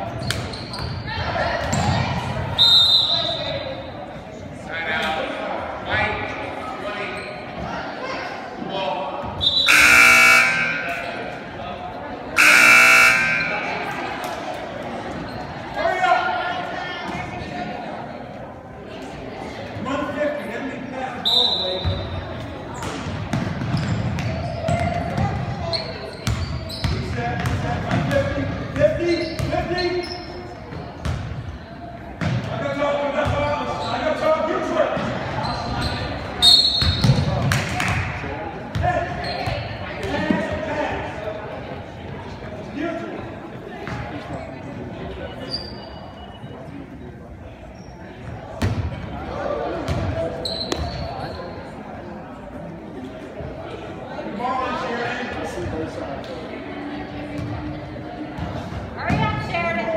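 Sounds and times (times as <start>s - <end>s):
voices echoing in hall: 0.0s - 59.9s
loud pitched blasts: 12.4s - 13.7s.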